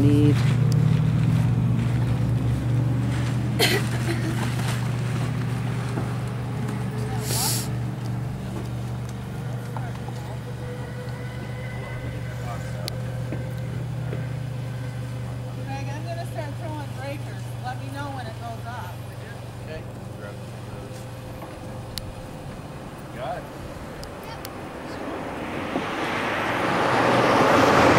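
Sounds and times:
vehicle engine humming: 0.0 - 27.9
faint voices: 6.8 - 25.4.

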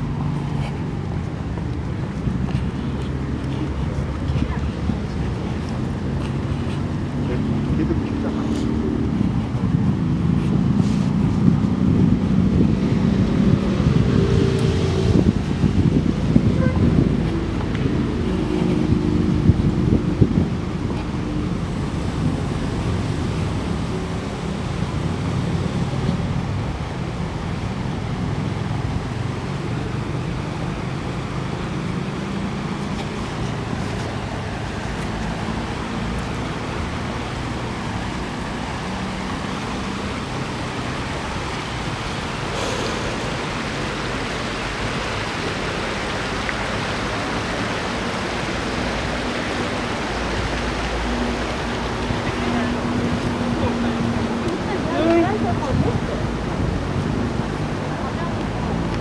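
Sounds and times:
road traffic rumble: 0.0 - 59.0.

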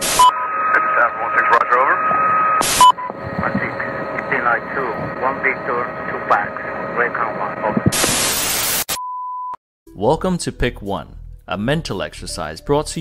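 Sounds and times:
loud white-noise static: 0.0 - 9.0
radio voices over hiss: 0.4 - 8.6.

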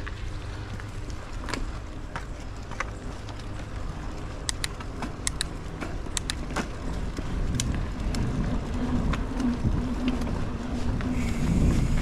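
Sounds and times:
bike tyres rumbling on dirt trail: 0.0 - 12.0
sharp clicks and ticks: 2.1 - 11.3.

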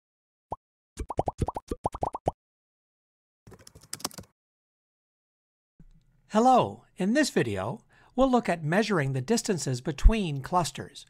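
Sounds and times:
bubbly plop pops rising in pitch: 1.0 - 2.4.

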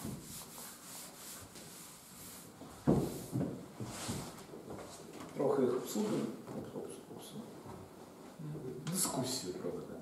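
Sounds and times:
eraser rubbing chalkboard: 0.0 - 3.4.

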